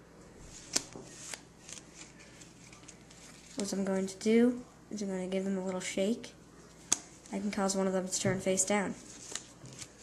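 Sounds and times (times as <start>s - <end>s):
playing cards sliding: 0.5s - 3.7s, 9.0s - 10.0s
card edges clicking: 0.6s - 3.7s.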